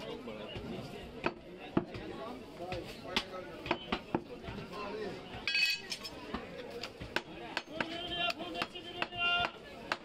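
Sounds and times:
faint background voices: 0:00.0 - 0:10.0.

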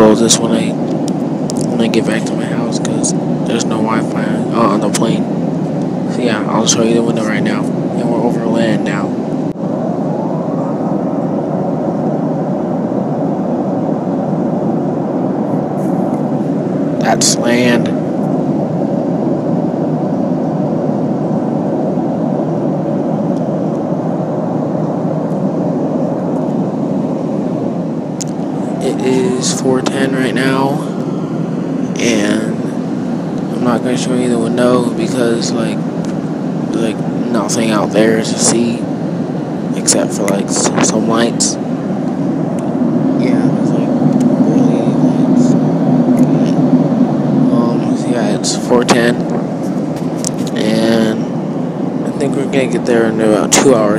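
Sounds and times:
airliner cabin engine drone: 0:00.0 - 0:53.9.

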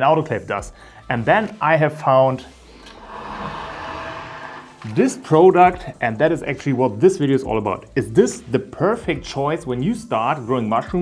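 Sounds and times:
pot scraping across wooden table: 0:02.8 - 0:05.3.

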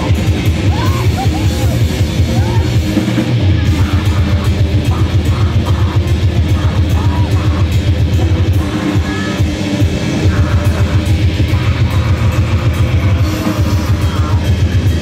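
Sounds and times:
grindcore band playing live: 0:00.0 - 0:15.0.

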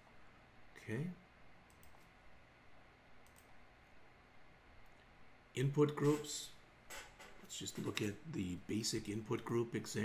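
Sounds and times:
computer mouse clicks: 0:01.7 - 0:02.1, 0:03.2 - 0:03.5.

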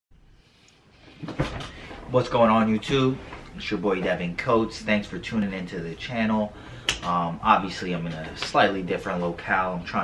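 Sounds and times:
short knocks and rustles: 0:01.1 - 0:04.2.

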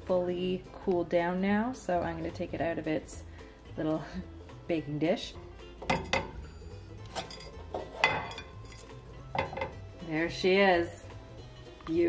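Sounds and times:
metal pan clinking against plate: 0:05.8 - 0:09.8.

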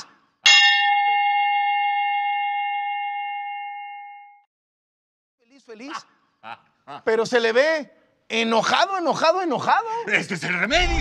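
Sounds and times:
bell-like ding: 0:00.4 - 0:04.5.

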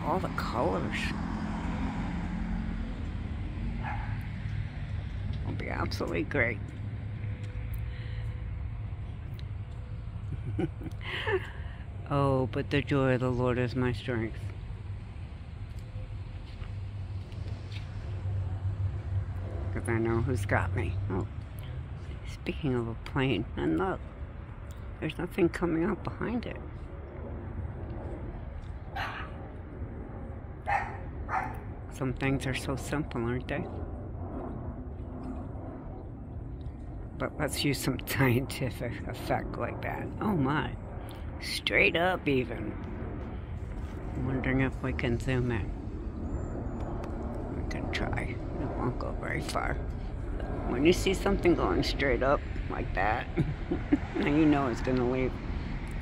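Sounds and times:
low background rumble: 0:00.0 - 0:56.0
low engine hum: 0:00.0 - 0:56.0
dog barking: 0:03.8 - 0:04.2, 0:29.0 - 0:29.3, 0:30.7 - 0:31.6.

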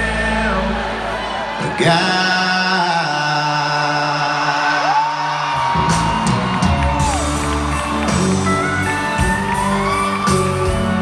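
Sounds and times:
crowd whooping: 0:00.0 - 0:03.1, 0:04.0 - 0:11.0
live country band music: 0:00.0 - 0:11.0.

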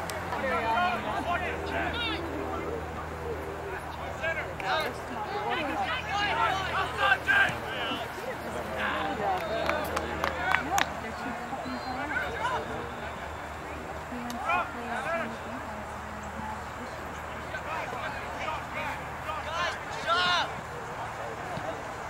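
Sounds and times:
people calling and shouting: 0:00.0 - 0:22.0.

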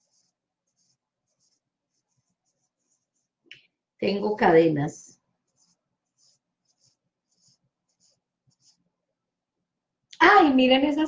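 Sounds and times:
pencil scratching on paper: 0:00.0 - 0:03.4, 0:05.2 - 0:09.0.

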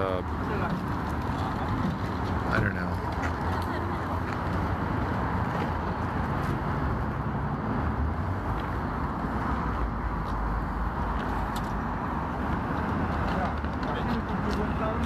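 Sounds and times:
city street traffic rumble: 0:00.0 - 0:15.0.

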